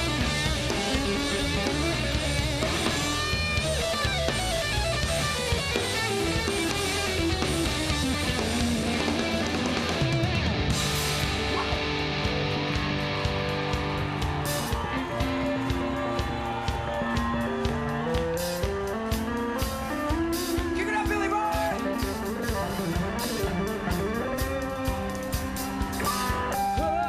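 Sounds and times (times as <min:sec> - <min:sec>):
bass: 0:00.0 - 0:27.0
drums: 0:00.0 - 0:27.0
electric guitar line: 0:00.0 - 0:27.0.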